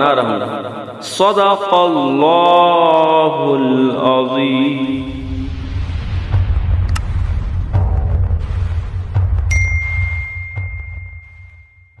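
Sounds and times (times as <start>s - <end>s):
low rumble: 4.7s - 11.8s
click: 6.9s - 7.1s
bell-like ding: 9.5s - 12.0s.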